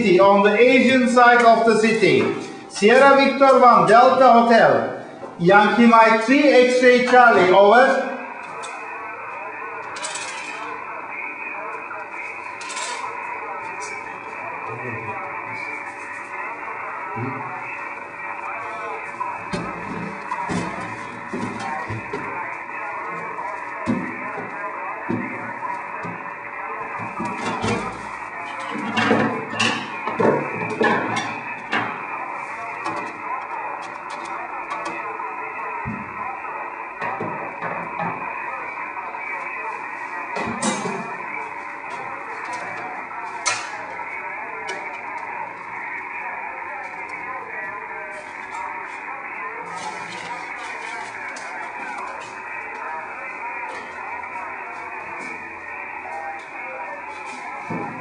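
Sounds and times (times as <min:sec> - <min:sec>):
radio noise bursts: 0:00.0 - 0:58.0.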